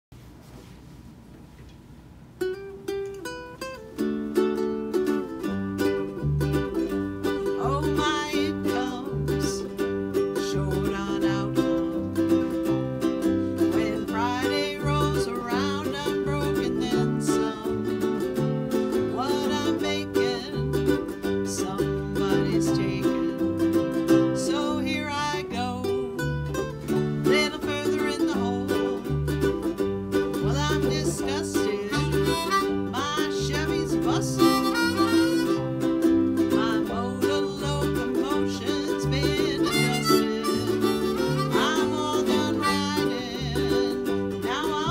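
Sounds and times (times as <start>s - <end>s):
strummed ukuleles: 2.3s - 44.9s
plucked bass line: 4.4s - 44.9s
person singing: 4.9s - 44.9s.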